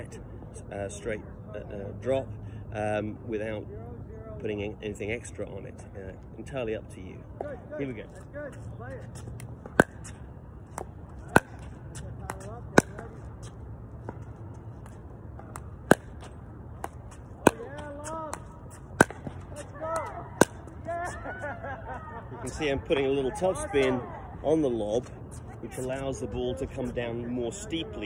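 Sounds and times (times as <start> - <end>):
paddle striking ball: 9.6 - 13.2, 14.8 - 20.8.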